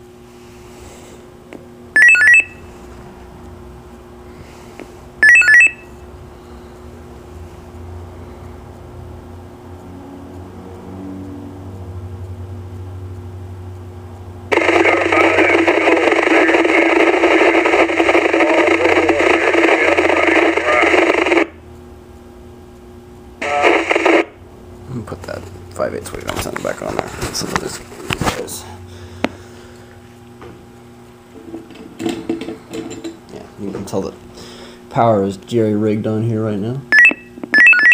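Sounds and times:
radio static rush: 14.5 - 21.6, 23.4 - 24.4
short electronic beep: 37.0 - 37.9.

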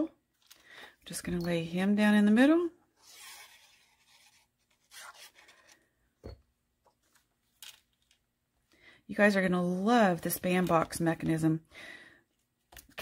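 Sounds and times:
paper rubbing and scraping: 3.0 - 5.8.

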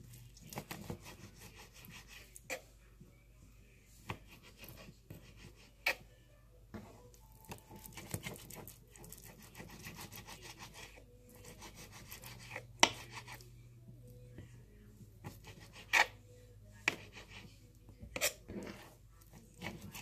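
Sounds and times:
knife slicing raw meat: 7.7 - 13.4.

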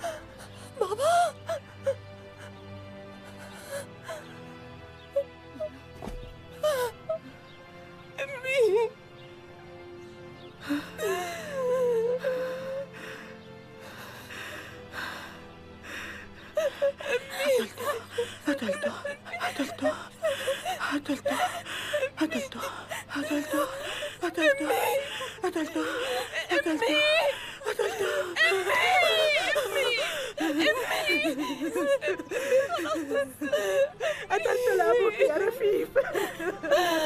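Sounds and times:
women crying and sobbing: 0.0 - 37.0.

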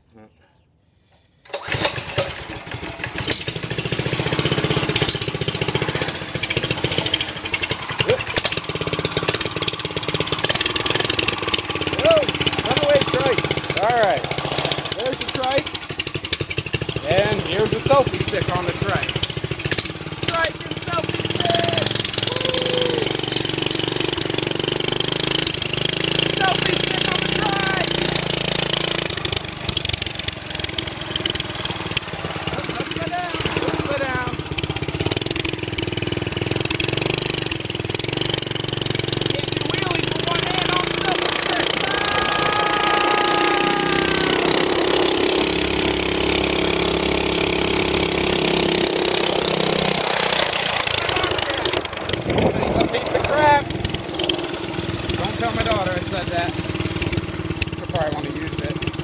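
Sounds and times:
small engine running: 1.0 - 59.0.

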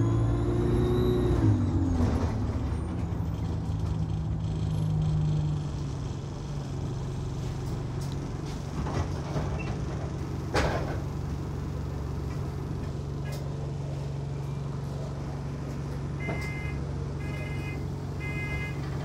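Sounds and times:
diesel bus engine idling: 2.5 - 19.0.

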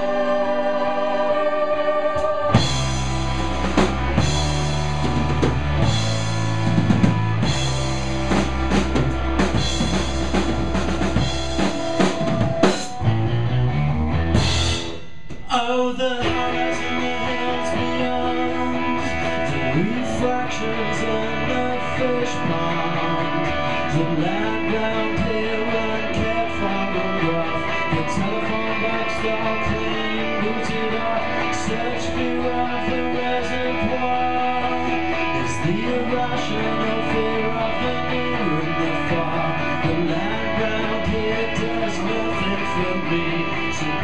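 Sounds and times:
heavy bass line: 0.0 - 15.6
electric guitars: 0.0 - 44.0
drum kit: 2.1 - 23.6.

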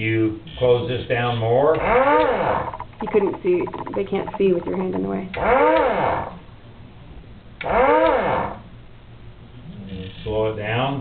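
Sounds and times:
drill motor whine: 1.8 - 3.1, 5.4 - 6.4, 7.6 - 8.6.

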